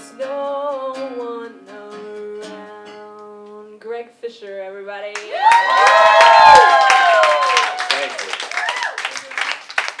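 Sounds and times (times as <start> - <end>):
audience clapping: 5.2 - 10.0
voices whooping and cheering: 5.3 - 9.1.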